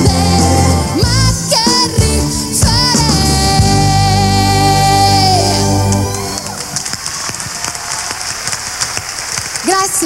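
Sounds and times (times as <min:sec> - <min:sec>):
audience applause: 0:05.9 - 0:10.0.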